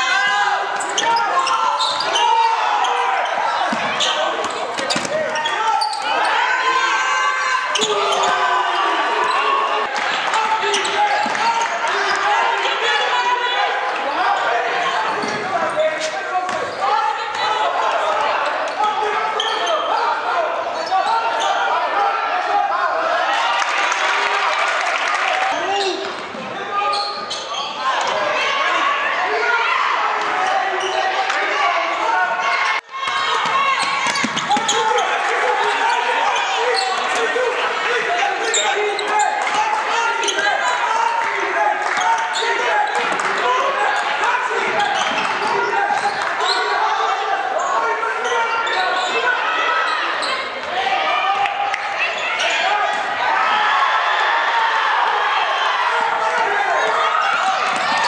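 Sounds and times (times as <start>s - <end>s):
voices of players and spectators: 0.0s - 58.0s.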